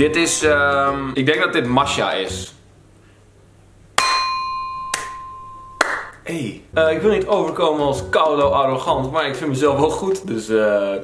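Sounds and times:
bell-like tone ringing: 4.0 - 6.0.

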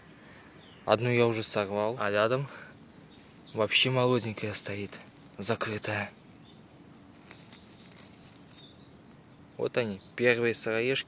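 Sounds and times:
grass rustling: 0.0 - 9.3.

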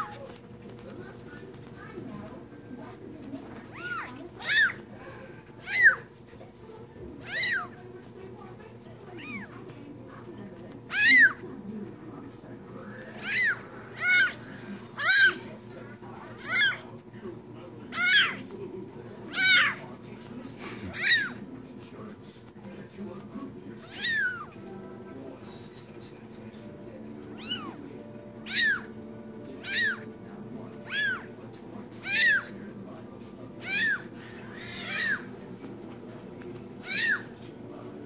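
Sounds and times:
kitten meowing: 3.7 - 4.8, 5.6 - 6.1, 7.2 - 7.8, 9.2 - 9.5, 10.9 - 11.4, 13.2 - 14.4, 15.0 - 15.4, 16.4 - 16.9, 17.9 - 18.4, 19.3 - 19.8, 20.9 - 21.4, 23.8 - 24.6, 27.4 - 27.8, 28.4 - 28.9, 29.6 - 30.1, 30.8 - 31.3, 32.0 - 32.5, 33.6 - 35.3, 36.8 - 37.3.

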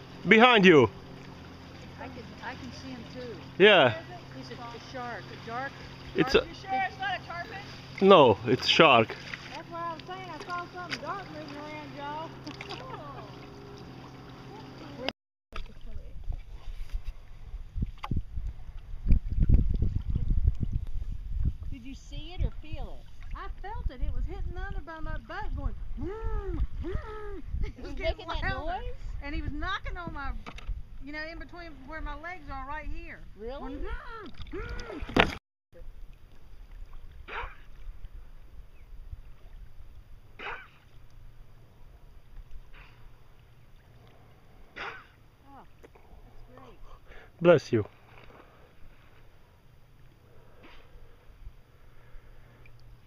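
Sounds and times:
wind rumble on microphone: 15.8 - 35.1.

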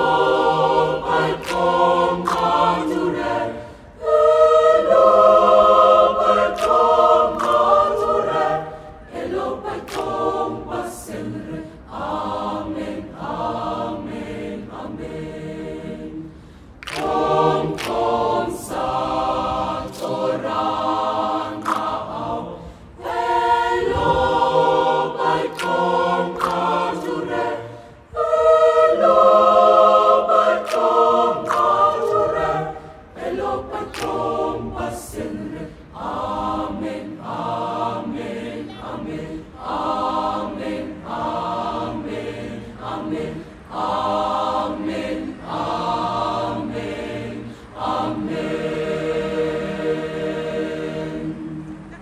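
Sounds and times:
youth choir singing in harmony: 0.0 - 52.0.

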